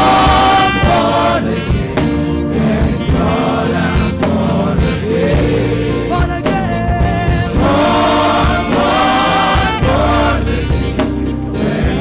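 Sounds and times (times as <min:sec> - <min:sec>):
gospel choir singing: 0:00.0 - 0:12.0
instrumental accompaniment with beat: 0:00.0 - 0:12.0.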